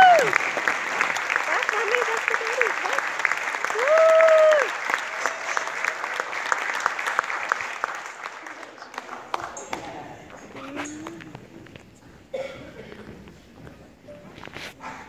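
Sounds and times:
loud cheering shouts: 0.0 - 0.5, 1.5 - 6.3
audience applauding: 0.0 - 10.6.

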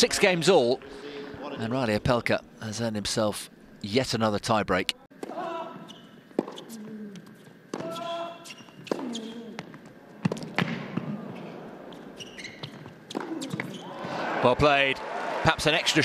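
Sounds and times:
tennis racket hitting ball: 6.3 - 6.8, 7.7 - 8.1, 8.8 - 11.1, 12.7 - 13.8.

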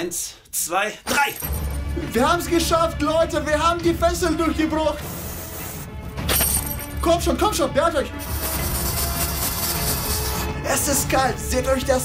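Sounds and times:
background music: 0.0 - 12.0
aerosol spray hissing: 5.0 - 5.9, 8.2 - 10.4.

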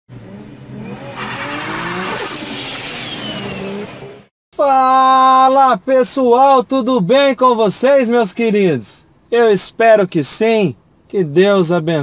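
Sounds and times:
car engine revving: 0.1 - 4.3
tyre screech: 0.8 - 4.1.

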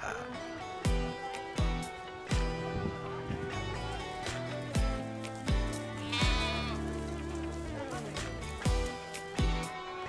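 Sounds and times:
background music with drum beat: 0.6 - 10.0
sheep bleating: 5.5 - 8.2.

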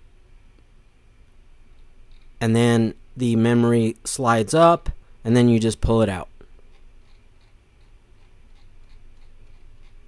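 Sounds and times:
low steady hum: 0.0 - 10.0
mouse scroll wheel ticking: 6.6 - 10.0.

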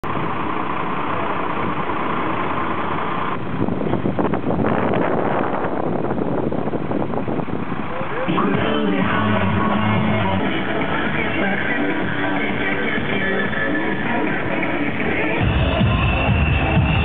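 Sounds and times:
crane engine and hydraulics: 0.0 - 4.5.

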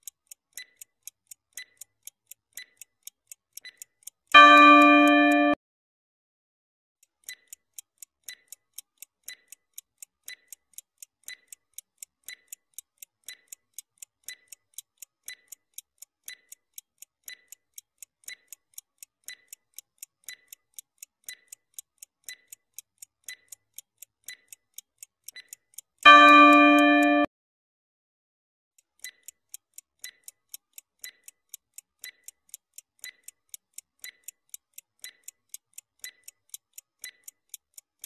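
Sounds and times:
clock ticking: 0.0 - 5.6, 7.0 - 27.3, 28.8 - 38.0.

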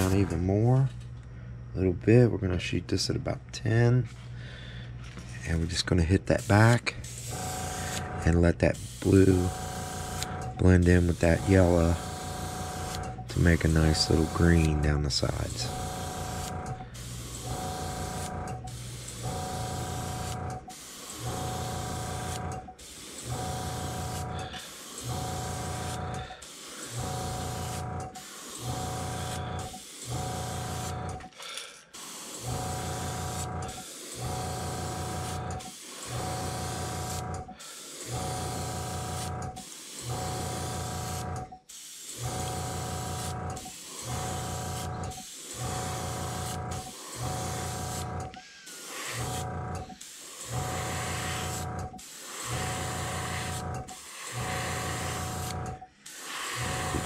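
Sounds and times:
airbrush air hiss: 6.3 - 57.0
motor hum: 6.9 - 31.4, 32.4 - 41.6, 42.2 - 57.0.

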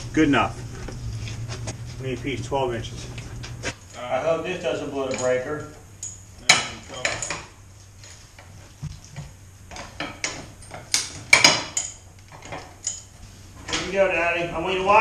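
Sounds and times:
metal tools clanking and rattling: 4.8 - 8.5, 9.7 - 14.0.

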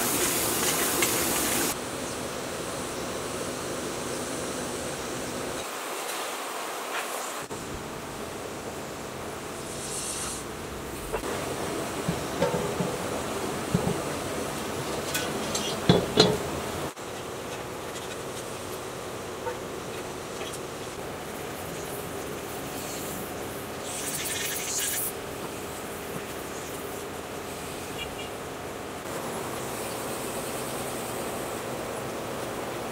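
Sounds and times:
insects buzzing: 0.0 - 32.9
rustle: 0.0 - 32.9.

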